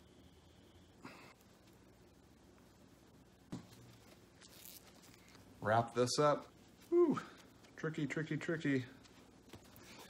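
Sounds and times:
cloth bag rustle: 0:03.8 - 0:05.4.

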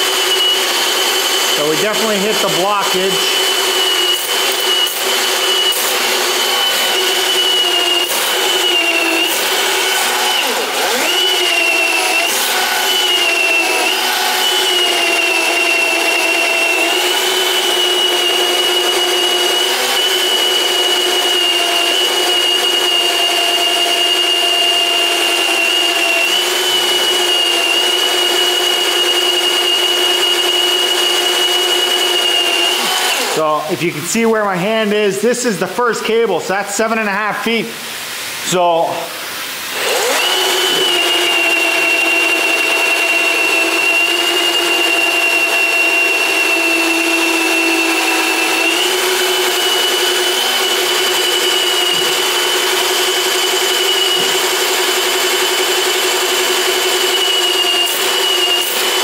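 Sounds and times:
drain machine motor whine: 0:00.0 - 0:33.8, 0:39.8 - 0:59.0.

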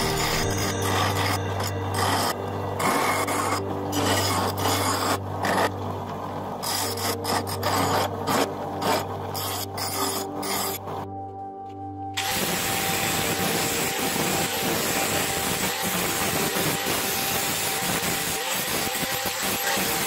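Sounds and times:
low hum: 0:00.0 - 0:04.6
metal scraping on metal: 0:00.0 - 0:05.9, 0:06.6 - 0:11.0.

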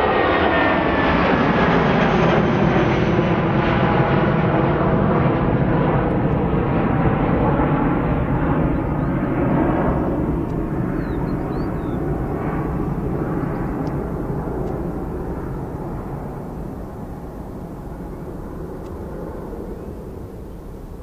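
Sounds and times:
jet engines rumbling: 0:00.0 - 0:21.0.

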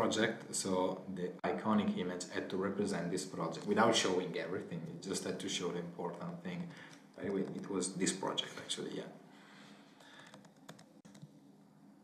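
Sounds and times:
faint keyboard clicks: 0:06.1 - 0:07.8, 0:10.0 - 0:11.4.

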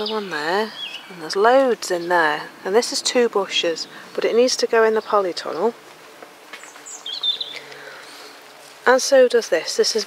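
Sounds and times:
small bird chirping: 0:00.0 - 0:02.2, 0:06.6 - 0:08.7.

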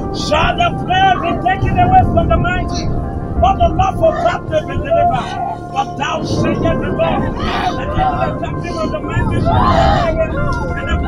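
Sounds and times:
steady low rumble: 0:00.0 - 0:11.0
voices chanting and crying out: 0:00.1 - 0:01.8, 0:03.8 - 0:11.0.

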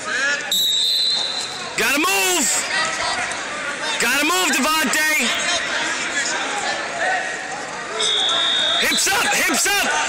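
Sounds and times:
referee's whistle blast: 0:00.5 - 0:01.6, 0:08.0 - 0:09.3.

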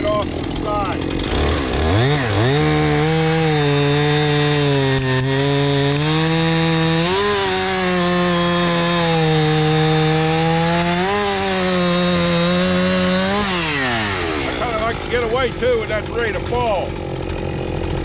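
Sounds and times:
chainsaw cutting log: 0:00.0 - 0:18.0.

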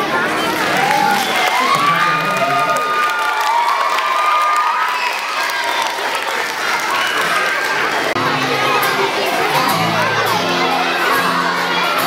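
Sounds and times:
people clapping: 0:00.0 - 0:10.2
children cheering and shouting: 0:00.0 - 0:12.0.

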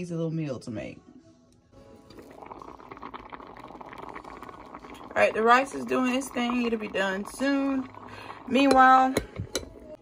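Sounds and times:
pot of rice bubbling: 0:02.0 - 0:10.0.

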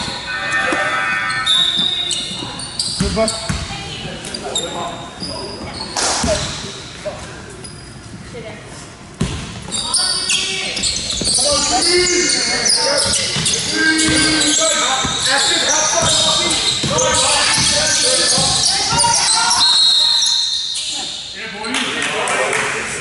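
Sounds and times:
referee's whistle: 0:00.0 - 0:03.0, 0:14.1 - 0:21.4
sneakers squeaking on wooden court: 0:00.0 - 0:07.0, 0:07.6 - 0:08.3, 0:09.2 - 0:21.3
basketball bouncing: 0:03.0 - 0:03.7, 0:16.0 - 0:19.3
people shouting: 0:16.3 - 0:20.2.

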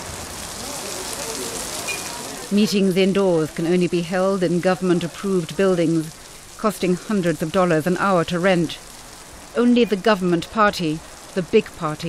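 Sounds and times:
heavy rain on street: 0:00.0 - 0:12.0.

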